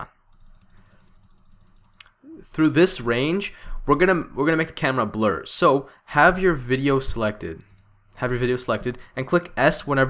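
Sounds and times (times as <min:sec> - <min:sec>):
mouse scroll wheel clicking: 0:00.3 - 0:02.1, 0:07.6 - 0:07.9.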